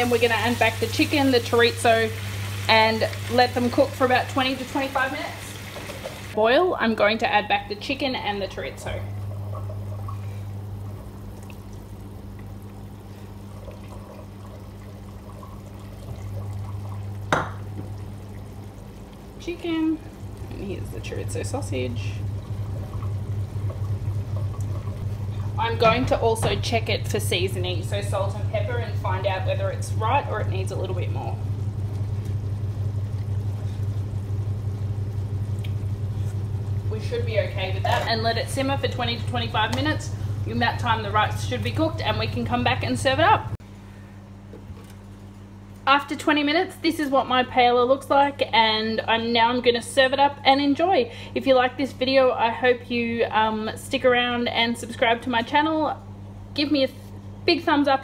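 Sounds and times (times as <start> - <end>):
sauce bubbling in a frying pan: 0.0 - 6.4, 9.1 - 20.9, 21.7 - 25.6, 31.1 - 37.0
steady low hum: 0.0 - 58.0.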